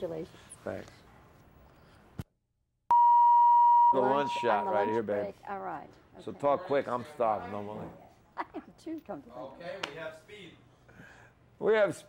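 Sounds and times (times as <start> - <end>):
electronic test tone beep: 2.9 - 5.1.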